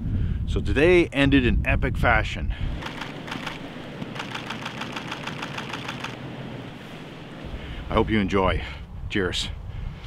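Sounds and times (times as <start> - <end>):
camera shutter rapid burst: 2.8 - 6.2.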